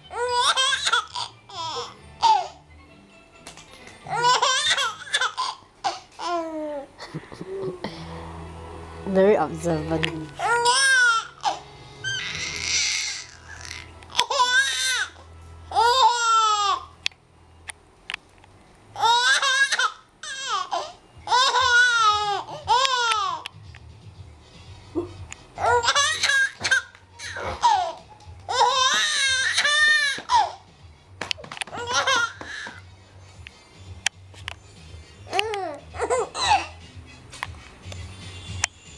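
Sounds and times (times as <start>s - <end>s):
baby laughing: 0.1s - 2.6s, 4.0s - 7.8s, 10.4s - 16.9s, 19.0s - 23.4s, 24.9s - 30.6s, 31.6s - 32.8s, 35.3s - 36.8s.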